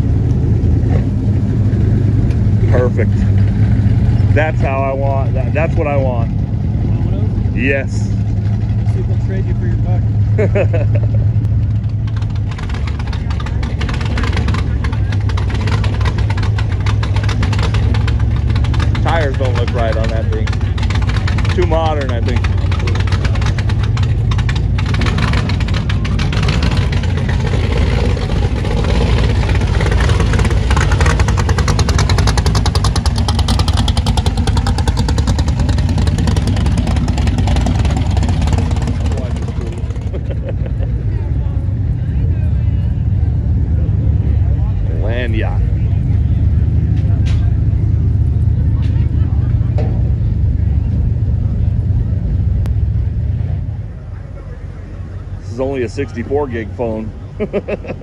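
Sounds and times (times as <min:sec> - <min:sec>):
loud car engine driving off: 0:00.0 - 0:58.0
steady car engine rumble: 0:00.0 - 0:58.0
voices: 0:04.2 - 0:11.1, 0:12.4 - 0:24.2, 0:37.8 - 0:58.0.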